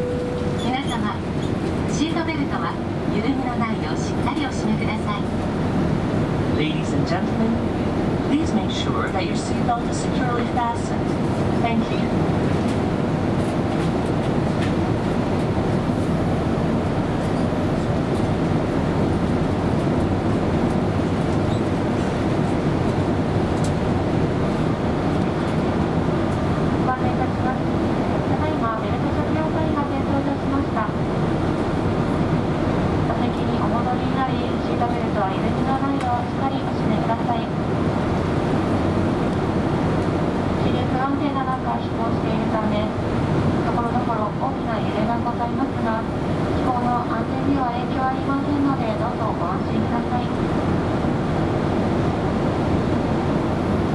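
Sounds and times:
announcement over speakers: 0:00.0 - 0:01.3
airliner cabin engine rush: 0:00.0 - 0:53.9.

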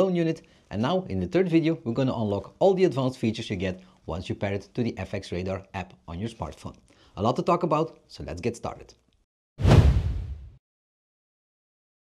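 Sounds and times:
deep boom: 0:09.6 - 0:10.6
whoosh sound effect: 0:09.6 - 0:10.6.

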